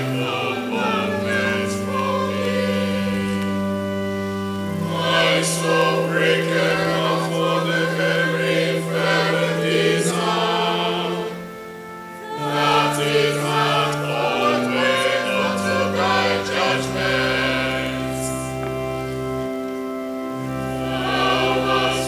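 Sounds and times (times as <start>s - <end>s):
choir chanting a psalm: 0.0s - 22.0s
organ chords: 0.0s - 22.0s.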